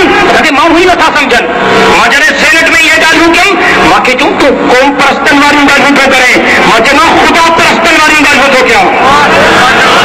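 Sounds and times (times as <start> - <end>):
man speaking through loudspeaker: 0.0 - 10.0.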